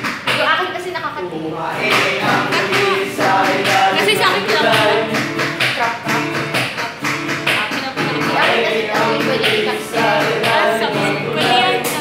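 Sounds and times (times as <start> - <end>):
song with singing over beat: 1.5 - 12.0.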